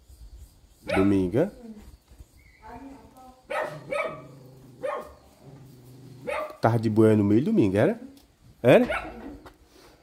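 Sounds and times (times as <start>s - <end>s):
dog barking: 0.9s - 1.2s, 3.5s - 5.2s, 6.2s - 6.6s, 8.8s - 9.3s.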